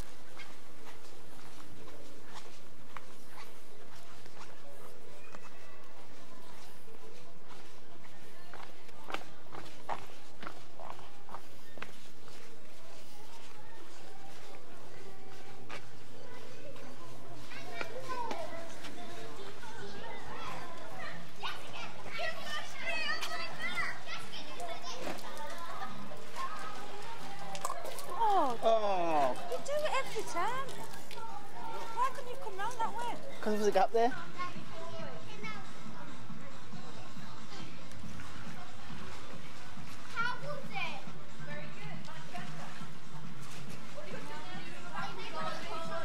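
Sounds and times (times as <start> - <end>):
voices at swimming pool: 0.0 - 46.0
background music: 26.0 - 46.0.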